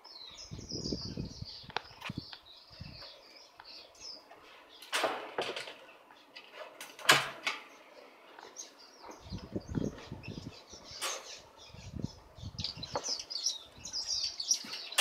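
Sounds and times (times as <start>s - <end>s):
finches chirping: 0.0s - 4.9s, 7.7s - 15.0s.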